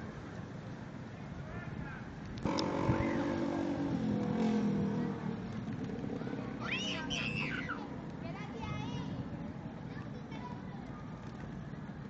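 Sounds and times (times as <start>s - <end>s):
vehicle engine accelerating: 2.4s - 6.7s.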